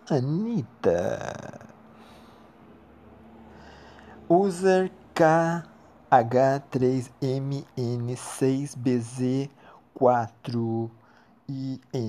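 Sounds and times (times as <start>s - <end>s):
faint steady hum: 0.0s - 12.0s
soft breath: 1.8s - 4.3s, 9.5s - 9.9s, 11.0s - 11.5s.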